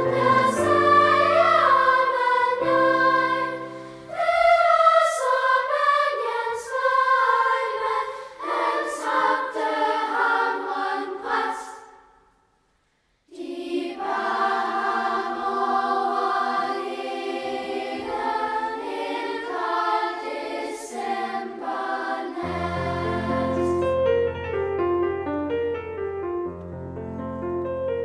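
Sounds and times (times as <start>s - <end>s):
children's choir singing: 0.0s - 12.3s, 13.3s - 23.9s.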